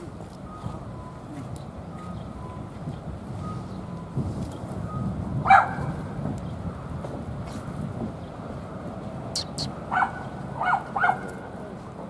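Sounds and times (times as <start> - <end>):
animal barking call: 9.4 - 11.3.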